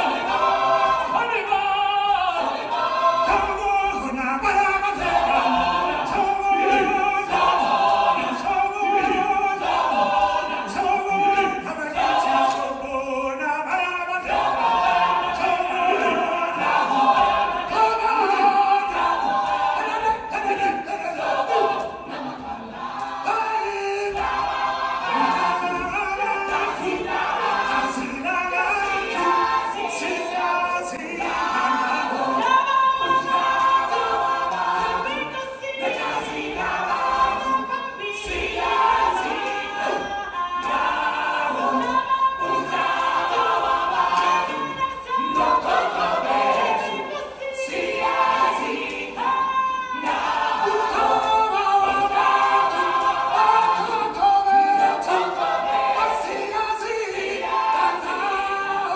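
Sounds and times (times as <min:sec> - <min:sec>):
choir singing sustained lines: 0:00.0 - 0:58.9.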